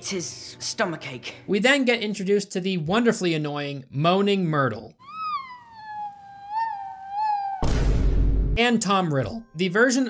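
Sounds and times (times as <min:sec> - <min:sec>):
girl's high-pitched moaning wail: 0:05.0 - 0:07.8.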